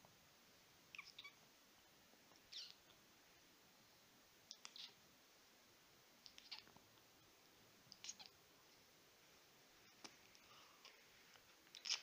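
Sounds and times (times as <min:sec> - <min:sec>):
faint kissing smacks: 0:04.5 - 0:05.0, 0:06.2 - 0:06.7, 0:07.9 - 0:08.3, 0:11.7 - 0:12.0.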